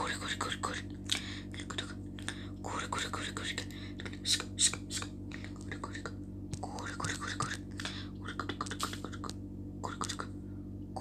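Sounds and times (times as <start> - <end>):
soft whispering: 0.0 - 10.4
steady low hum: 0.0 - 11.0.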